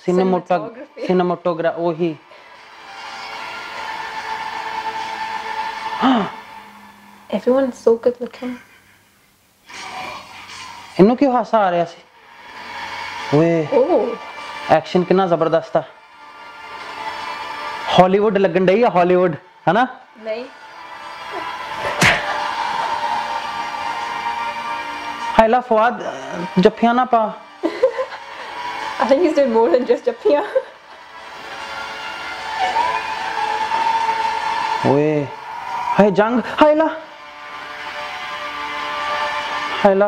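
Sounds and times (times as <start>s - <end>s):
sustained music tones: 0.0s - 8.1s, 12.1s - 40.0s
loud trailer hit: 21.8s - 22.5s.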